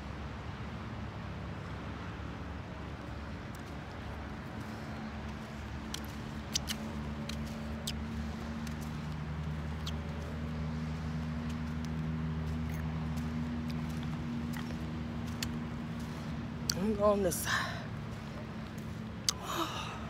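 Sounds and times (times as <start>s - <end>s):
low engine hum: 0.0s - 20.0s
small sharp clicks: 5.9s - 8.0s.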